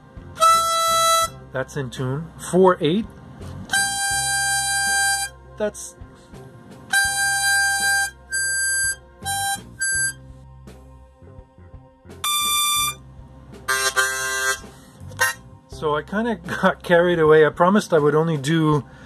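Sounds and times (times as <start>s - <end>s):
harmonica notes: 0.0s - 1.4s, 3.6s - 5.8s, 6.9s - 10.3s, 12.2s - 13.0s, 13.6s - 15.6s.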